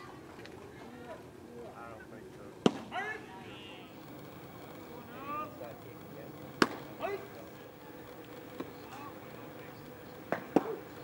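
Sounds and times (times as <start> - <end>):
voices calling out: 2.9 - 11.0
sharp bat crack: 6.6 - 6.8.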